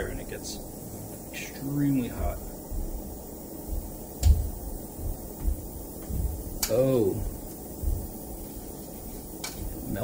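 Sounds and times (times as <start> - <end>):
burner flame rumbling: 0.0 - 10.0.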